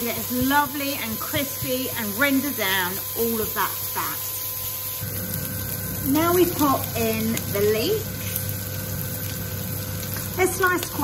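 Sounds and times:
air fryer fan humming: 0:00.0 - 0:11.0
leeks sizzling in frying pan: 0:00.0 - 0:11.0.

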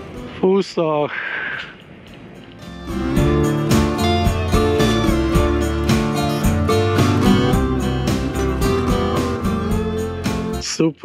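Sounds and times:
guitar music: 0:00.0 - 0:00.4, 0:02.3 - 0:10.6.

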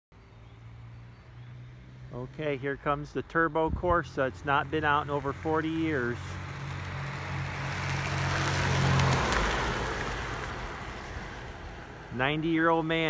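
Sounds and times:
road noise: 0:00.1 - 0:13.0
car engine driving past: 0:04.6 - 0:12.2.

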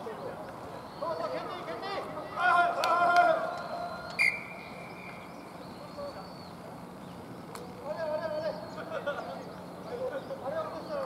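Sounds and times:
men shouting: 0:02.2 - 0:03.5
referee's whistle blast: 0:04.1 - 0:04.6.

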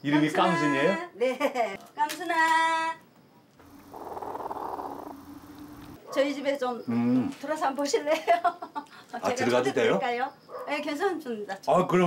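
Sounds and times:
hen purring trill: 0:03.6 - 0:06.0.

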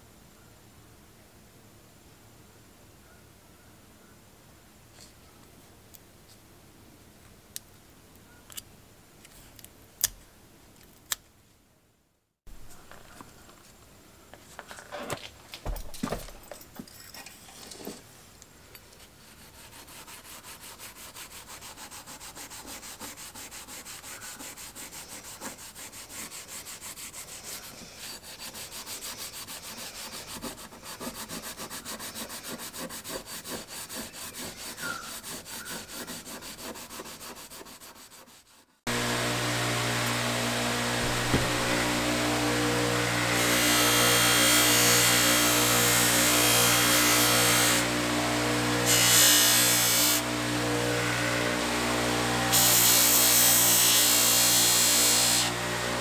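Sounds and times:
steel wool scrubbing metal blade: 0:19.2 - 0:38.4, 0:41.0 - 0:42.2
bench grinder humming: 0:38.9 - 0:56.0
buffing wheel hissing: 0:41.0 - 0:42.1.

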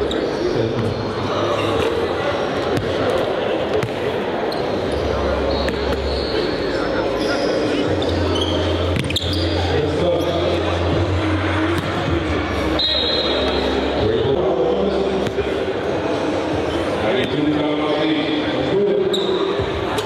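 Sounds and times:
murmur of crowd talk: 0:00.0 - 0:20.0
sneaker squeaks: 0:03.8 - 0:10.6, 0:12.7 - 0:13.8, 0:19.0 - 0:20.0.

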